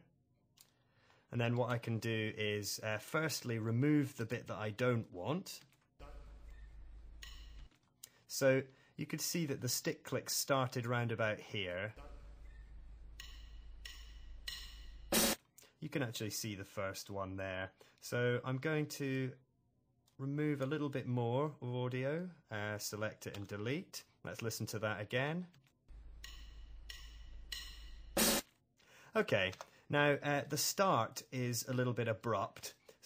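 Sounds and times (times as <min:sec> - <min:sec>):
drumstick click: 0:07.2 - 0:07.7, 0:13.2 - 0:15.4, 0:26.2 - 0:28.4
drumsticks clicking together: 0:26.2 - 0:27.9.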